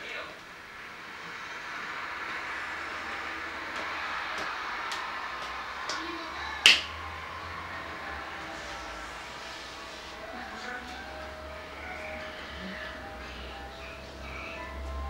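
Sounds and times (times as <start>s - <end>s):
steady rushing noise: 0.0s - 15.0s.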